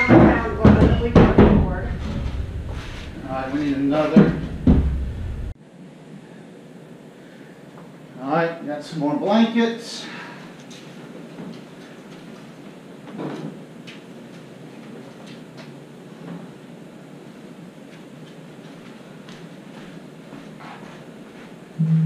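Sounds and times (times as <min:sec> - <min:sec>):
steady low background hum: 0:00.0 - 0:22.0.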